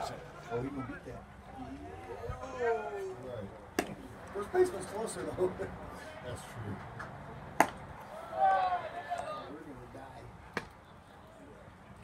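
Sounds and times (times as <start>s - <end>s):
baseball pop: 7.6s - 7.8s, 10.5s - 10.8s.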